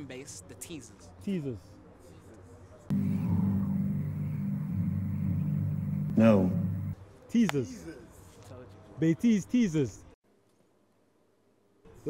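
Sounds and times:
low droning rumble: 0:02.9 - 0:07.0.

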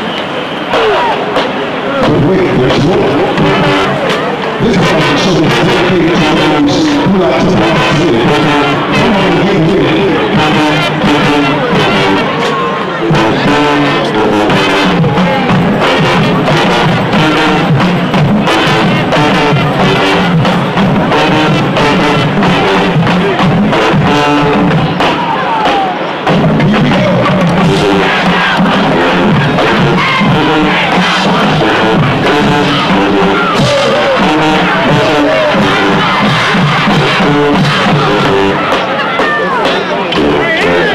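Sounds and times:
drum line beat: 0:00.0 - 0:40.9
marching band playing: 0:00.0 - 0:40.9.

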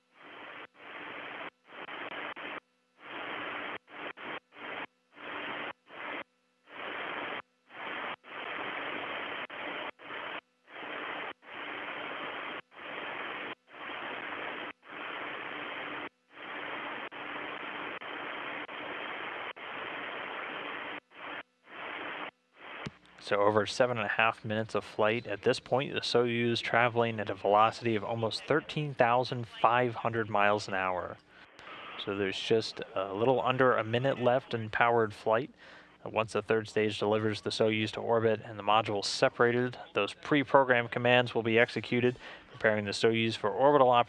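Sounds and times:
faint hum: 0:00.0 - 0:44.0
radio static hiss: 0:00.0 - 0:44.0.

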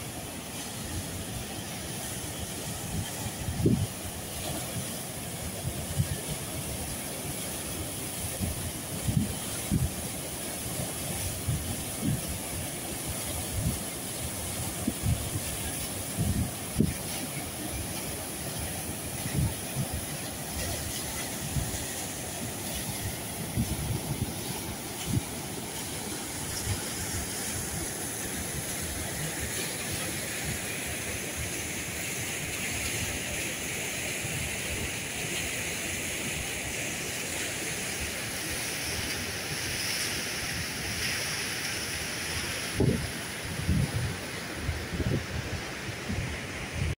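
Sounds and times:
river rushing over boulders: 0:00.0 - 0:46.9
wind buffeting microphone: 0:03.4 - 0:04.0, 0:42.8 - 0:46.9.

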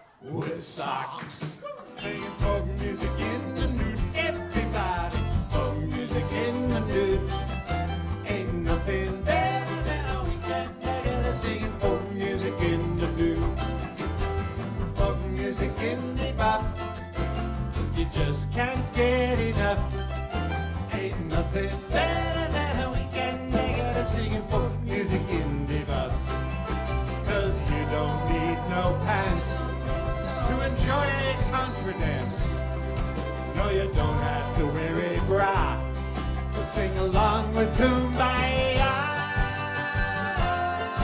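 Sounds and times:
drums: 0:01.2 - 0:41.0
picked mandolin: 0:01.6 - 0:41.0
strummed acoustic guitar: 0:01.8 - 0:41.0
keyboard: 0:02.0 - 0:41.0
low bass line: 0:02.4 - 0:41.0.

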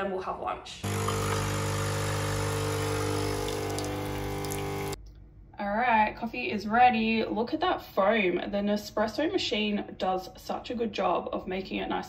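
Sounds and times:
coffee machine pump humming: 0:00.8 - 0:05.0.

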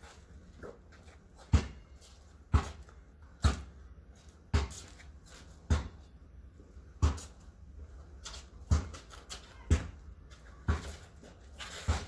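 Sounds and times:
basketball bouncing on concrete: 0:01.0 - 0:06.2, 0:06.8 - 0:07.6, 0:08.2 - 0:12.0.

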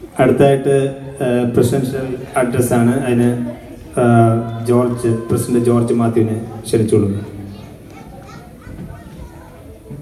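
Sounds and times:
crowd chatter in a hall: 0:00.0 - 0:10.0
children's voices: 0:03.4 - 0:10.0.

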